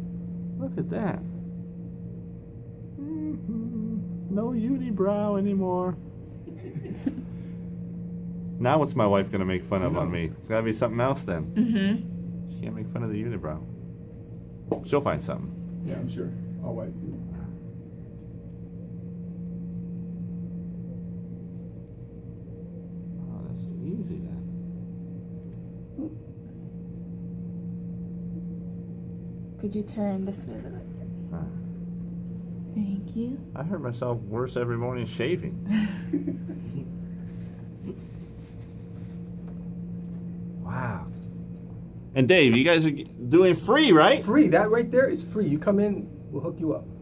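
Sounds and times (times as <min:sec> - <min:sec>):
low machine hum: 0:00.0 - 0:47.0.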